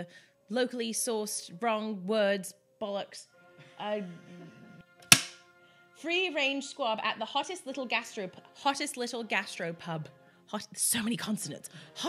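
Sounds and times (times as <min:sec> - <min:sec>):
faint background music: 0:00.0 - 0:12.0
sharp smack impact: 0:05.0 - 0:05.4.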